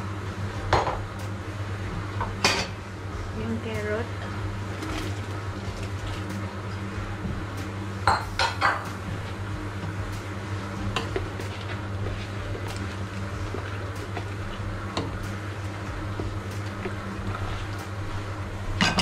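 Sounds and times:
steady low hum: 0:00.0 - 0:19.0.

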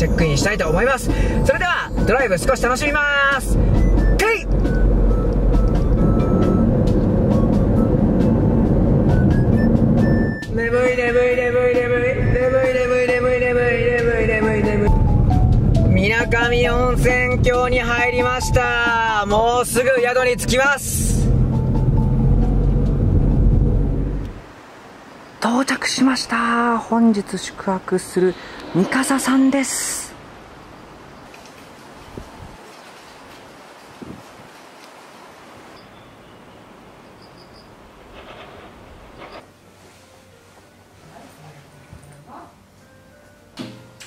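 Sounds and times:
background music: 0:00.0 - 0:24.4, 0:39.5 - 0:44.0
car road and engine noise: 0:00.0 - 0:25.0, 0:27.5 - 0:32.6, 0:35.3 - 0:39.6
person speaking: 0:25.4 - 0:30.3.

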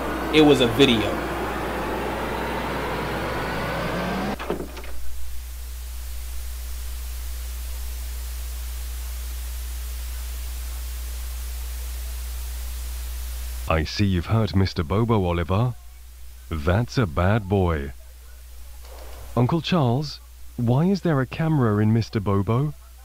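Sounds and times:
dark ambient drone: 0:00.0 - 0:04.5
dense noisy layer: 0:00.0 - 0:08.0, 0:13.6 - 0:23.0.

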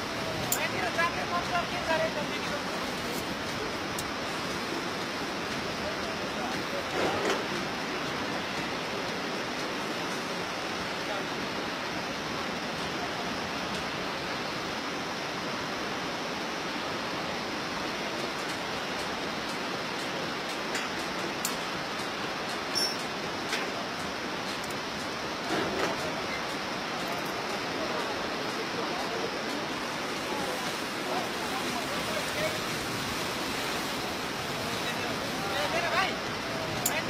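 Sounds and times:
whitewater river rushing: 0:00.0 - 0:37.0
faint clicks: 0:36.7 - 0:37.0.

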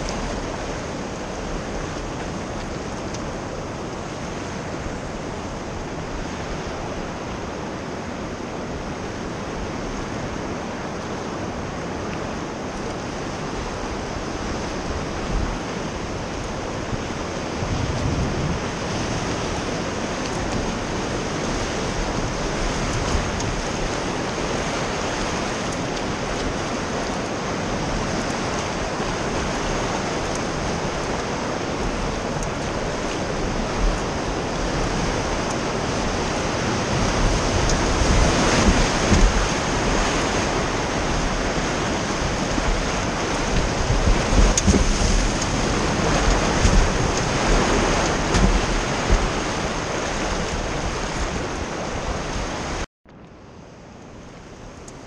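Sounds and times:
rushing river rapids: 0:00.0 - 0:52.9.

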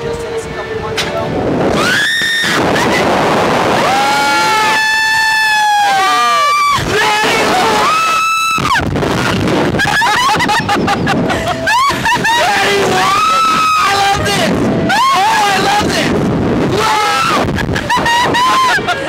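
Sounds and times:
people screaming and yelling: 0:01.7 - 0:19.0.

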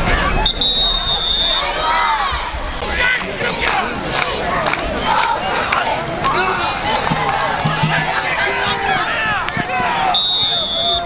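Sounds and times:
crowd shouting and cheering: 0:00.0 - 0:11.0
sharp hits: 0:07.0 - 0:08.5.

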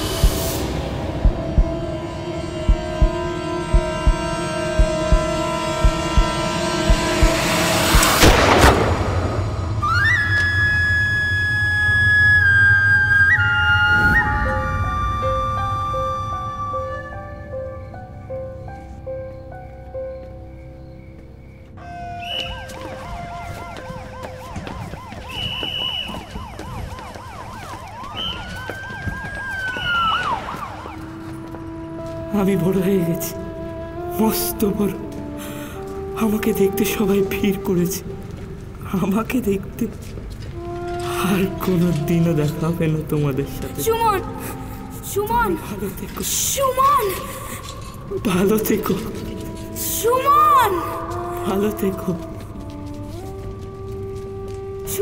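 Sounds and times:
low double thump: 0:00.0 - 0:01.8, 0:02.6 - 0:09.2
soft background music: 0:00.0 - 0:25.4, 0:26.4 - 0:55.0
droning suspense score: 0:00.0 - 0:34.1
police siren yelping: 0:22.4 - 0:31.2.

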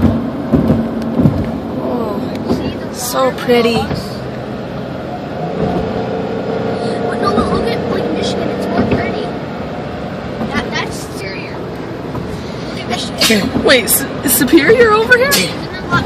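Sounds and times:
car interior road noise: 0:00.0 - 0:16.0.

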